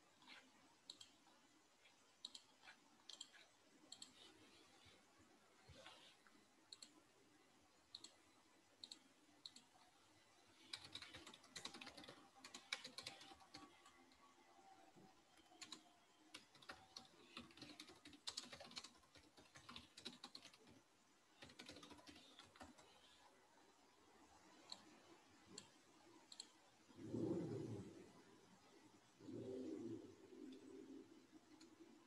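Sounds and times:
faint keyboard typing: 0.0 - 5.0, 5.6 - 23.4, 24.4 - 27.7, 30.4 - 32.0.

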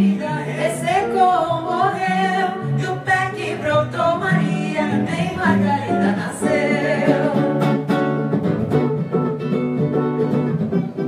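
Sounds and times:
woman singing: 0.0 - 7.8
guitar playing chords: 0.0 - 11.0.

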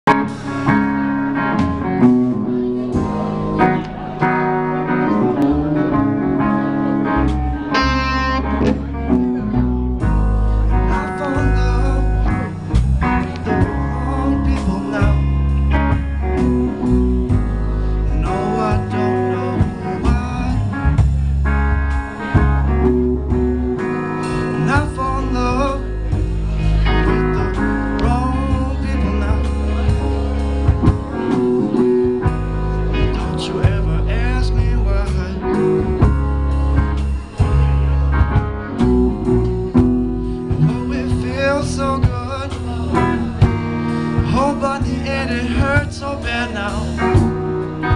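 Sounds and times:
bass guitar: 0.0 - 47.9
electric guitars: 0.0 - 47.9
drum kit: 0.1 - 47.9.

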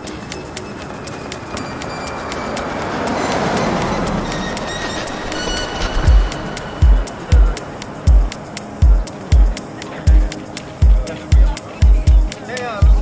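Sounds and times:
ambient electronic noise wash: 0.0 - 12.1
rapid clicks: 0.0 - 13.0
faint high tones: 1.4 - 9.2.

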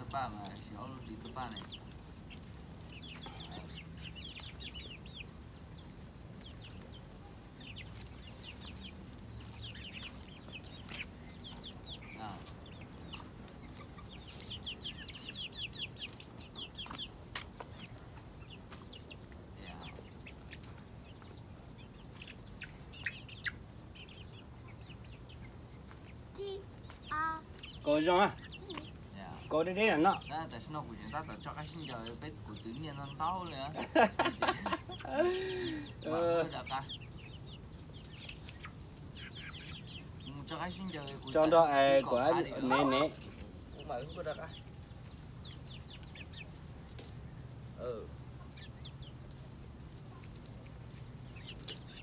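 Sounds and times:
chicks peeping: 0.0 - 52.0.

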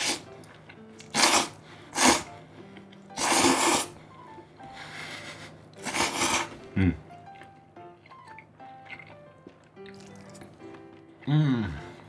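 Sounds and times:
person slurping noodles: 0.0 - 0.3, 1.0 - 2.3, 3.1 - 4.0, 5.8 - 6.6
faint background music: 0.0 - 12.0.

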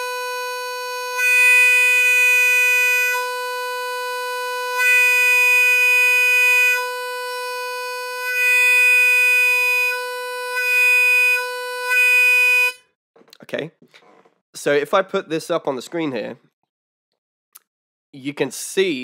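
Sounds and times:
blues harmonica holding a note: 0.0 - 12.8.

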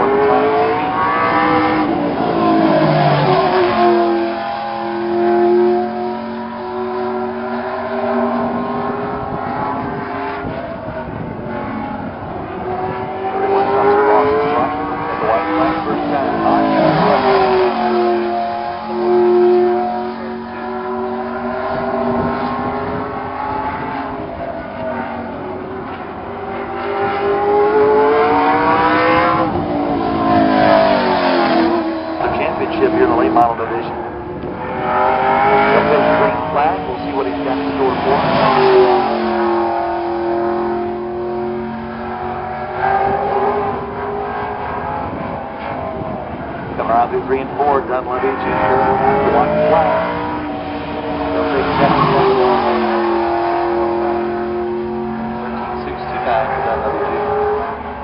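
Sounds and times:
race car engine passing: 0.0 - 58.0.

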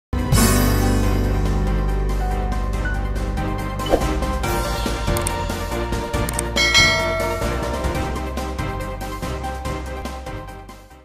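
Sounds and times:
background music: 0.2 - 11.0
bright bell-like chime: 6.6 - 8.3.

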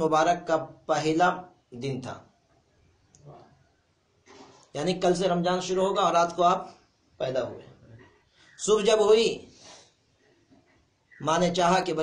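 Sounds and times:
man talking: 0.0 - 2.3, 4.8 - 7.8, 8.6 - 9.5, 11.2 - 12.0.

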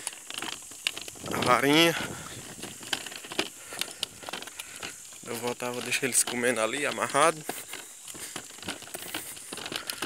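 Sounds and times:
hooves and cart rattling: 0.0 - 10.0.

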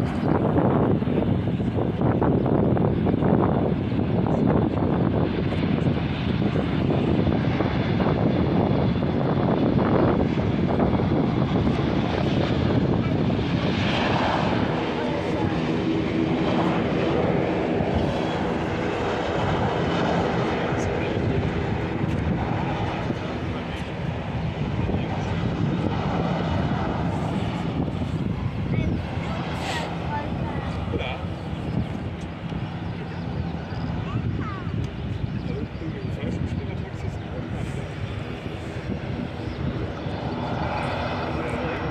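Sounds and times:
jet engines roaring: 0.0 - 41.9.

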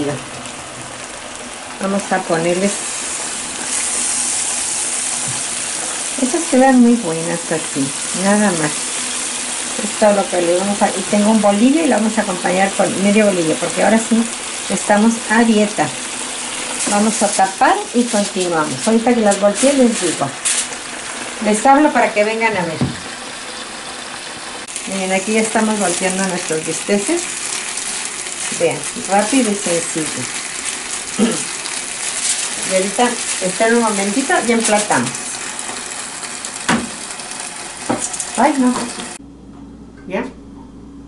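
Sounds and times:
chicken sizzling in a frying pan: 0.0 - 39.2.

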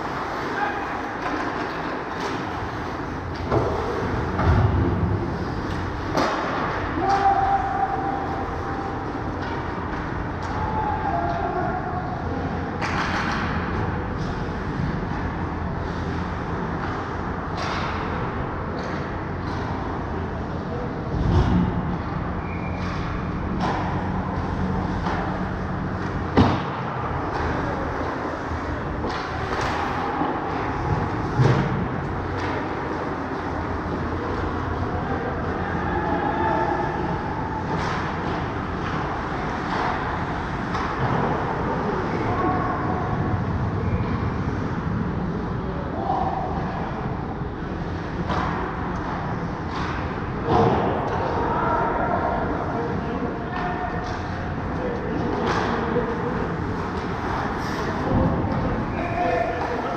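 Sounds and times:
skates scraping ice: 0.0 - 10.3, 55.2 - 59.9
hockey sticks clacking: 0.0 - 20.6, 22.4 - 35.8, 36.6 - 42.3, 47.8 - 51.4, 53.6 - 59.9.

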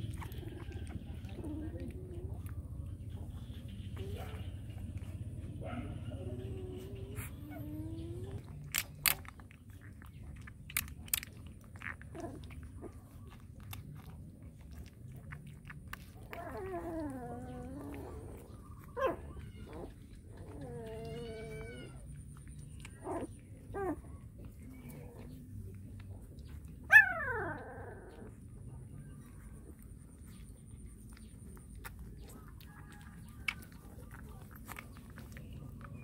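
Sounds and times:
puppies whining and crying: 0.0 - 25.4, 26.4 - 28.5
puppy yelp: 16.2 - 22.1, 26.8 - 27.7.

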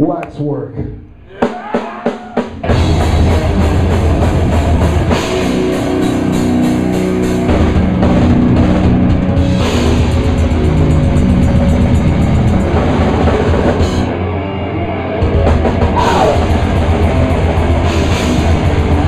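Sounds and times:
death metal band playing live: 1.7 - 19.0.

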